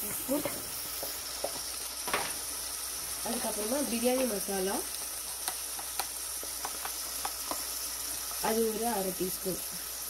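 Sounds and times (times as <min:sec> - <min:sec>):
oil sizzling in a pot: 0:00.0 - 0:10.0.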